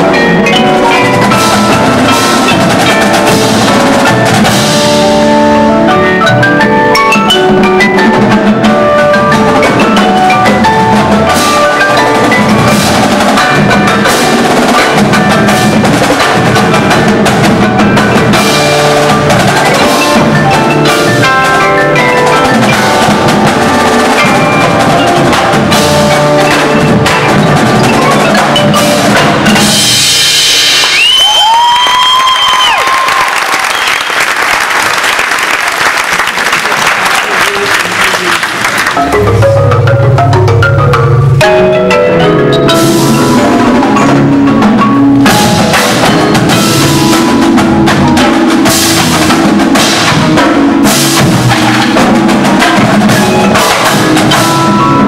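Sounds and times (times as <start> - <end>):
marimbas and mallet keyboards: 0.0 - 30.7, 38.9 - 55.0
marching drums: 0.0 - 55.0.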